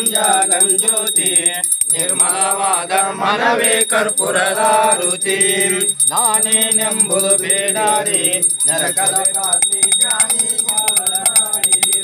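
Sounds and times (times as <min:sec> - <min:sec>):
person chanting melodically: 0:00.0 - 0:12.0
steady high-pitched ringing: 0:00.0 - 0:12.0.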